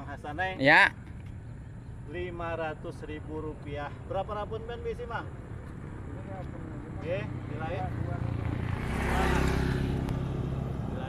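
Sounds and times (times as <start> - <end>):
small motorcycle engine passing: 7.4 - 11.0.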